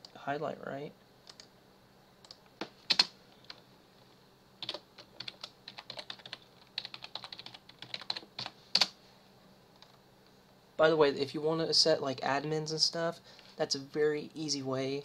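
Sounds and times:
typing on computer keyboard: 0:02.3 - 0:03.1, 0:04.6 - 0:08.9.

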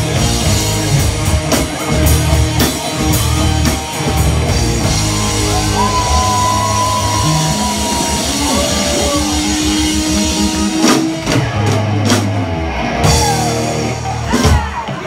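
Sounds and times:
bass and drums chugging: 0:00.0 - 0:15.0
distorted electric guitars: 0:00.0 - 0:15.0.

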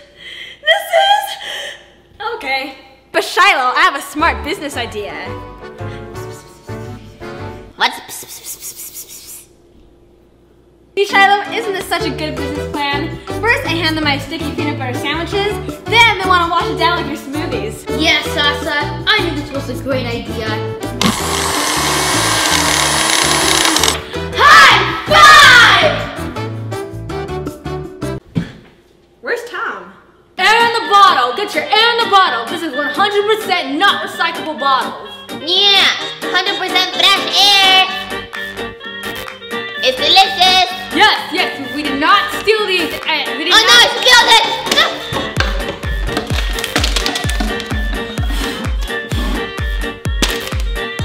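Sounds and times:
blender whirring: 0:21.0 - 0:24.0
music with bouncy bass line: 0:44.8 - 0:51.0.

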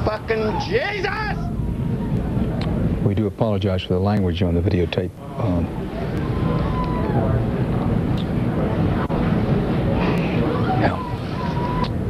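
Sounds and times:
low outdoor rumble and hiss: 0:00.0 - 0:12.0.

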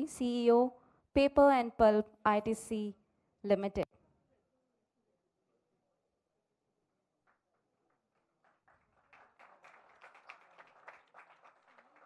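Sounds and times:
audience applause: 0:08.2 - 0:12.0.

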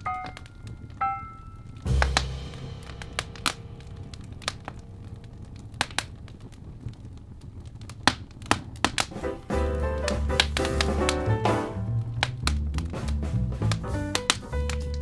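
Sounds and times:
wood fire crackling and popping: 0:00.0 - 0:15.0
bass and chords music: 0:01.9 - 0:05.0, 0:09.1 - 0:15.0.

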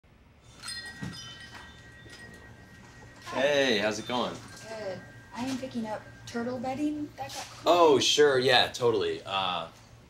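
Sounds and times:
shop door chime: 0:00.4 - 0:08.0.

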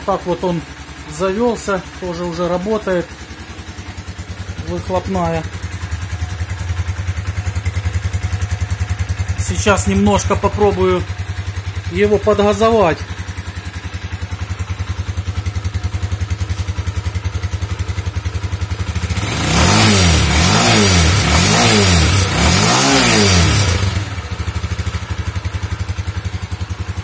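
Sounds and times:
motorcycle exhaust idling and revving: 0:00.0 - 0:27.0.

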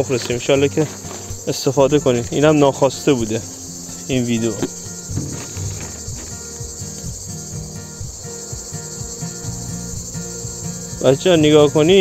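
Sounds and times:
high-pitched insect chirring: 0:00.0 - 0:12.0
honeybees buzzing: 0:00.0 - 0:12.0.

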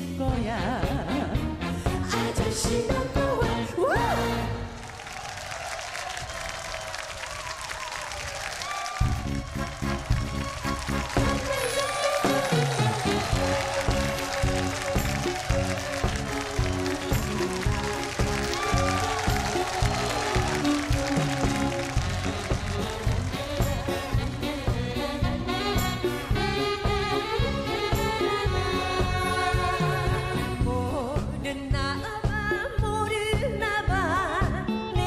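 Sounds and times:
live band playing: 0:00.0 - 0:04.8, 0:08.9 - 0:35.0
audience applause: 0:04.6 - 0:28.3.

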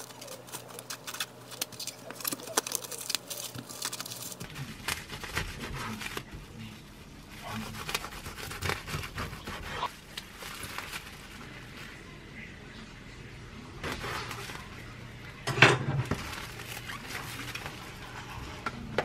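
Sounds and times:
plastic cling film crinkling: 0:00.0 - 0:12.0, 0:13.8 - 0:15.3, 0:16.0 - 0:18.4
knife sawing through sandwich: 0:07.4 - 0:09.9.

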